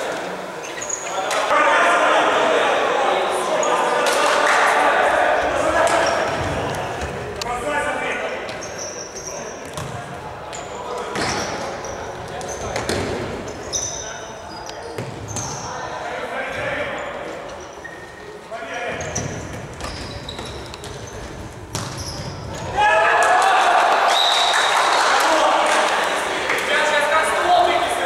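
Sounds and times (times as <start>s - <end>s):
shoes squeaking: 0.4s - 1.4s, 8.3s - 15.8s, 16.7s - 22.8s
players shouting: 1.3s - 7.0s, 22.6s - 28.0s.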